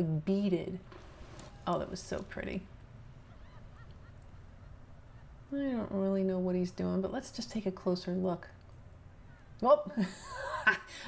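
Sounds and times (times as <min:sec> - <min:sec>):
low background rumble: 0:00.0 - 0:11.0
short bird calls: 0:03.1 - 0:05.5.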